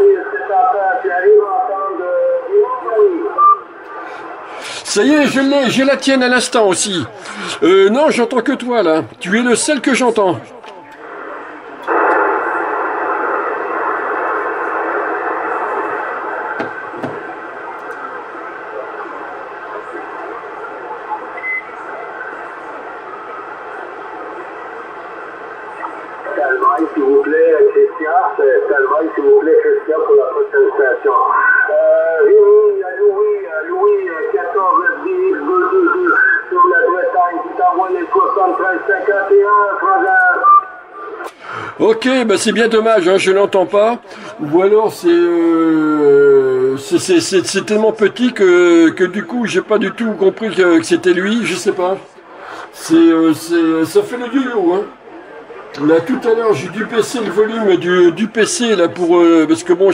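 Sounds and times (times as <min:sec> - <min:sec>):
distant voice over radio: 0:00.0 - 0:07.7, 0:25.9 - 0:41.4
radio static hiss: 0:00.0 - 0:59.9.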